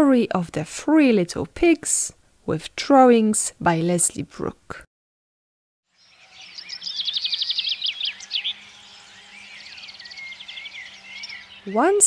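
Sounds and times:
birdsong trills and chirps: 0:05.9 - 0:12.0.

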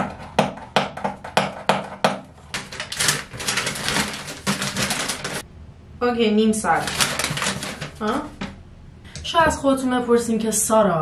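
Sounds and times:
paper crinkling: 0:02.4 - 0:05.4, 0:06.6 - 0:08.6.

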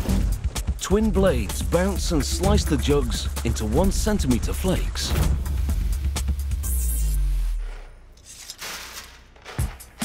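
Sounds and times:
documentary background music: 0:00.0 - 0:07.6.

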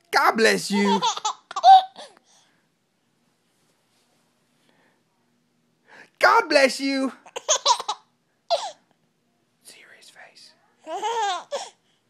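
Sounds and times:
baby laughing: 0:00.6 - 0:02.2, 0:07.2 - 0:08.8, 0:10.9 - 0:11.8.

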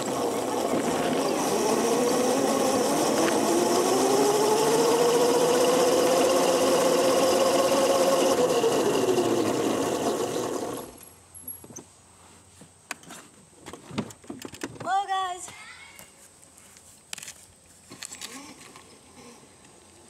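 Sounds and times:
electric go-kart motor whining: 0:00.0 - 0:11.1.

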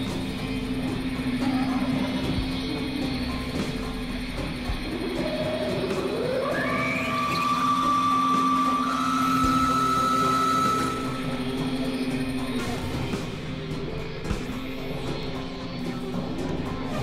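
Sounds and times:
gliding high synthesizer tone: 0:00.0 - 0:17.0
low synthesizer drone: 0:00.0 - 0:17.0.

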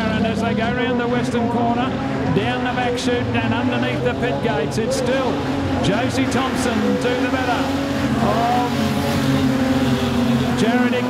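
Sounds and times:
race car engines at speed: 0:00.0 - 0:11.0.

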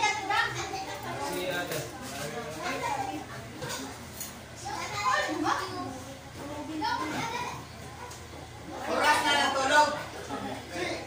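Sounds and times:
young children calling and chattering: 0:00.0 - 0:11.0.

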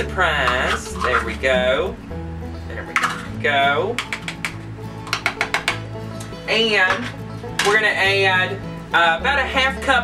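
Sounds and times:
country music: 0:00.0 - 0:10.0
spatula tapping jar and saucepan: 0:00.4 - 0:01.4, 0:03.9 - 0:05.9.

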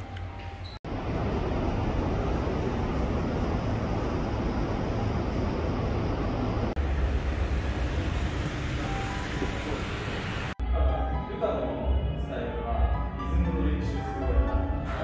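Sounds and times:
rumbling vehicle noise: 0:00.5 - 0:10.6.

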